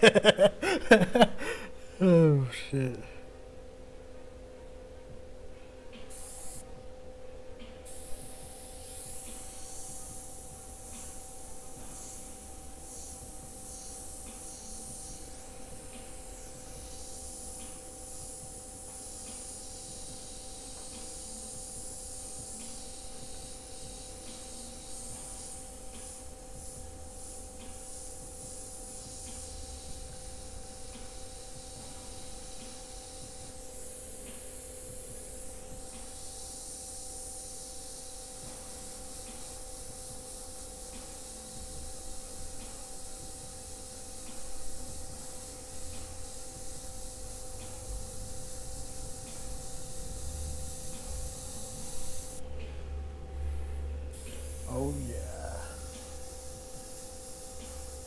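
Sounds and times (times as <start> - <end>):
airbrush hissing: 0.0 - 2.2, 6.1 - 6.6, 7.9 - 52.4, 54.1 - 58.0
steady hum: 0.0 - 58.0.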